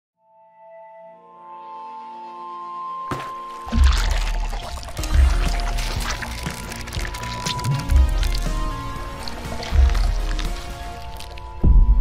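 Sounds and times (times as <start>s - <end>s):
musical pad: 0.2s - 11.8s
water splash effect: 3.1s - 11.6s
deep bass hit: 11.6s - 12.0s.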